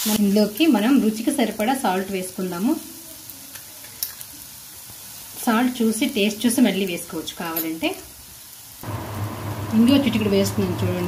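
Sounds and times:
mango sizzling in hot oil: 0.0 - 11.0.

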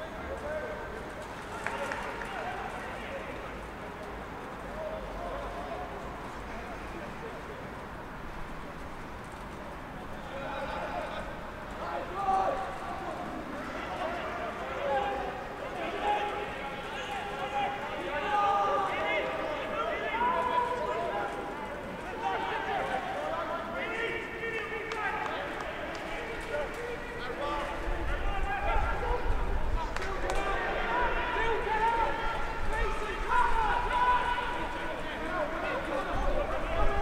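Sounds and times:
open-air background noise: 0.0 - 37.0
players shouting: 10.2 - 37.0.

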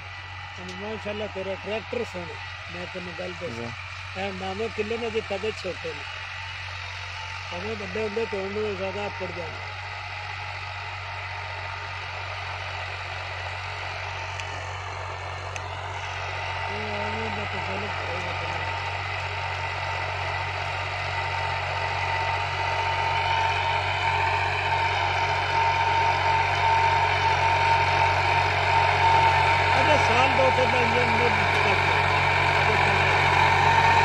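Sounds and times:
tractor engine running under load: 0.0 - 34.0.

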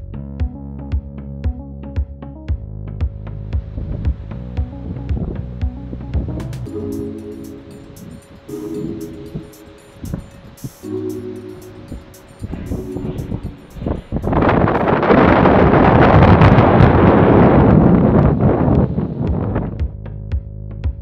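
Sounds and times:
background music with repeated phrases: 0.0 - 14.9
wind buffeting microphone: 3.6 - 6.5, 11.7 - 20.0.

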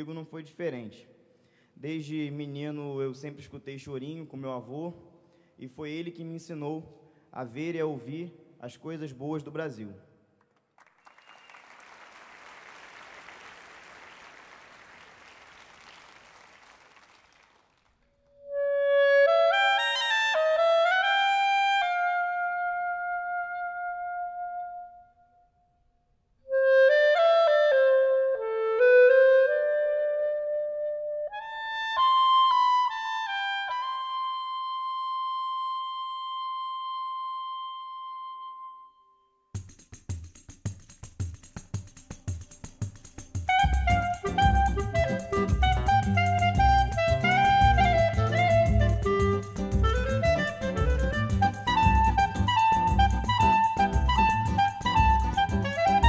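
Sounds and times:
audience applauding: 10.4 - 18.1
clarinet holding high note: 18.4 - 25.3, 26.4 - 39.4, 43.5 - 56.0.

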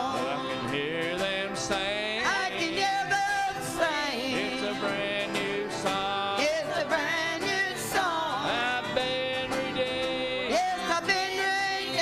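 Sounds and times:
strummed acoustic guitar: 0.0 - 12.0
voices singing together: 0.0 - 12.0.

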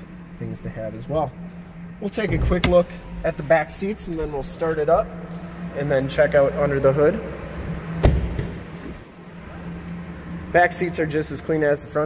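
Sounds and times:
faint low hum: 0.0 - 12.0
truck door thud: 8.0 - 8.6.

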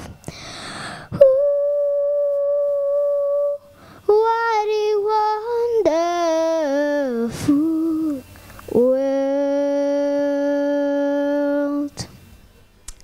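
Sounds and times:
girl singing unaccompanied: 1.1 - 12.2.

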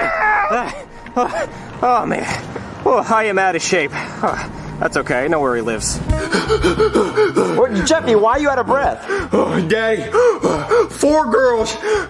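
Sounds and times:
person panting and gasping: 0.5 - 2.5, 6.1 - 7.7, 9.0 - 11.0, 11.8 - 12.0
man speaking: 7.3 - 11.9.

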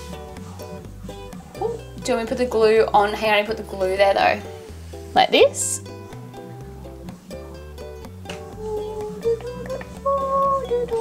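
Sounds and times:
plucked strings music: 0.0 - 11.0.

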